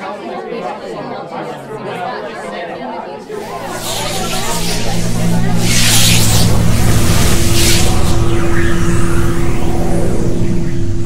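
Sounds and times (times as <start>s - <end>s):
rising whoosh: 3.4s - 11.0s.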